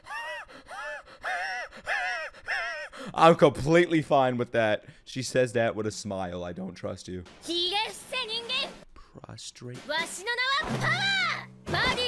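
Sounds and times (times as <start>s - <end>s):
high-pitched voice crying: 0.0s - 3.0s.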